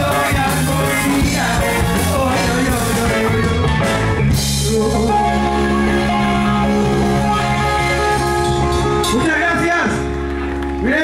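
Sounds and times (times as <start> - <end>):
drum kit: 0.0 - 10.5
electric guitar: 0.0 - 11.0.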